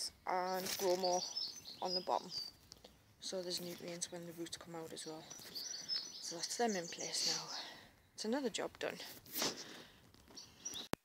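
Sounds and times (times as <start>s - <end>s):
rustle: 0.0s - 7.8s, 8.4s - 10.9s
high bird chirp: 0.3s - 8.5s, 10.3s - 10.9s.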